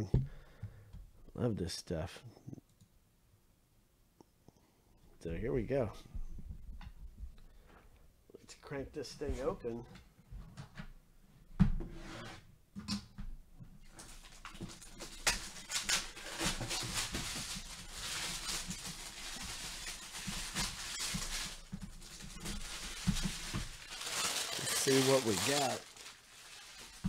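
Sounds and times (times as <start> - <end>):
plastic shrink-wrap tearing and crinkling: 13.8 - 27.0.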